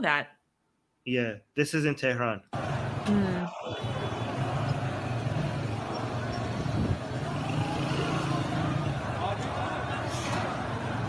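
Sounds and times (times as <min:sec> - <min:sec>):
street background noise: 0:02.5 - 0:11.0
engines rumbling: 0:02.6 - 0:11.0.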